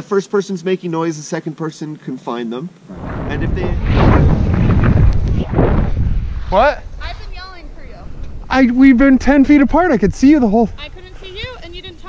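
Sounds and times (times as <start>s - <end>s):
wind rumble on microphone: 2.9s - 12.0s.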